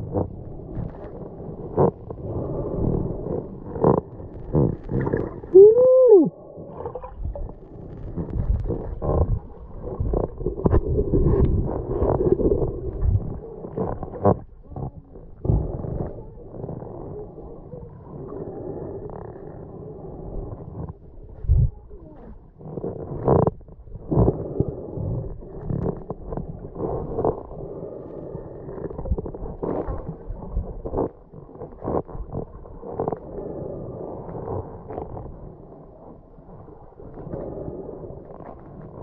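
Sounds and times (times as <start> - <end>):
muffled underwater hum: 0.0 - 39.0
water rushing at microphone: 0.0 - 39.0.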